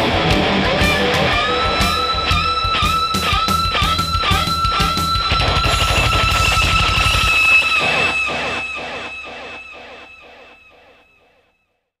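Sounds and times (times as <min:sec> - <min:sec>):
overdriven electric guitar with delay: 0:00.0 - 0:11.4.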